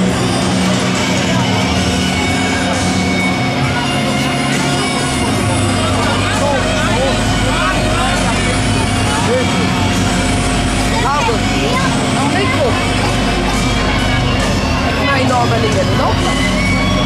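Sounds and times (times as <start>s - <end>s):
fairground ride machine hum: 0.0s - 17.0s
people chattering: 0.0s - 17.0s.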